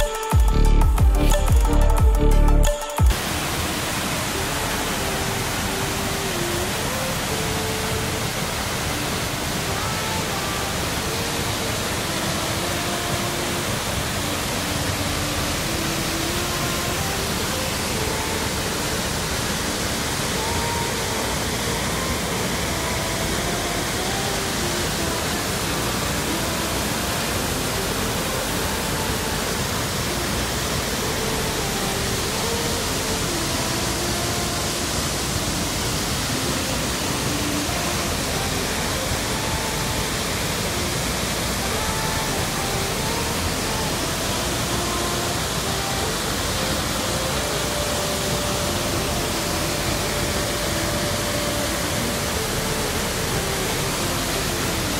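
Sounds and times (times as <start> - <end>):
waterfall crashing into pool: 3.0 - 54.9.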